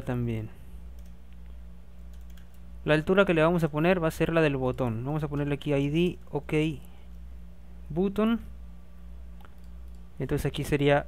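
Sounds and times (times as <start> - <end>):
man speaking: 0.0 - 0.6, 2.8 - 6.9, 7.9 - 8.6, 10.2 - 11.0
steady low hum: 0.0 - 11.0.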